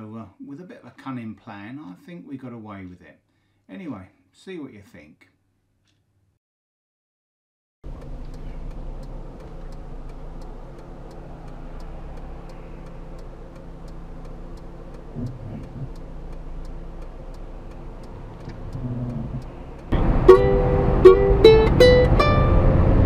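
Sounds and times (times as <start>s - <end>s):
car engine running: 7.8s - 23.0s
road noise: 7.8s - 23.0s
fast regular ticking: 7.9s - 20.0s.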